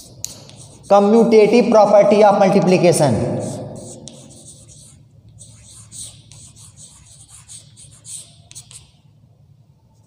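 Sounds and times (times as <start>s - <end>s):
chalk writing on blackboard: 0.0s - 1.2s, 3.4s - 9.0s.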